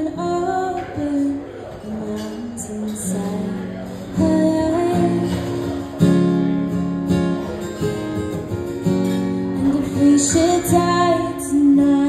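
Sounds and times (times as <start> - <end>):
acoustic guitar strummed and picked: 0.0 - 12.0.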